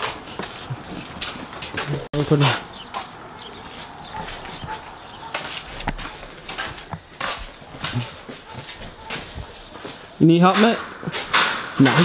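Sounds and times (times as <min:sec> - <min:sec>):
knocks and scrapes on metal shelving: 0:00.0 - 0:02.6, 0:03.8 - 0:12.0.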